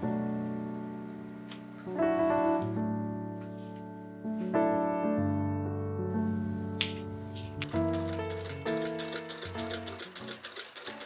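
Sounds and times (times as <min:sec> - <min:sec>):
piano music with sustained chords: 0:00.0 - 0:11.0.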